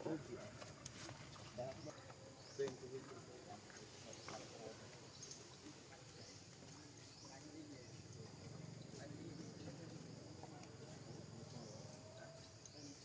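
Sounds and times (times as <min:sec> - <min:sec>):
faint low murmurs: 0:00.0 - 0:13.0.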